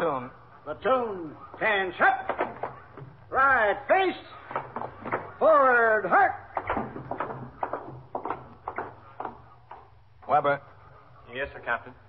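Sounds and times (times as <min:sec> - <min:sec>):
marching footsteps: 0:06.4 - 0:10.4.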